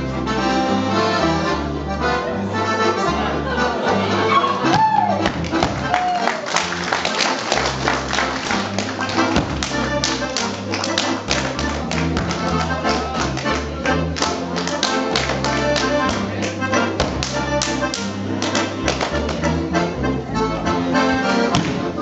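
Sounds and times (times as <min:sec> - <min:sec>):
accordion folk dance tune: 0:00.0 - 0:22.0
slaps on thighs and shoes: 0:04.7 - 0:05.9, 0:08.7 - 0:12.6, 0:21.5 - 0:21.9
feet stamping on stage: 0:04.7 - 0:06.0, 0:08.2 - 0:12.7.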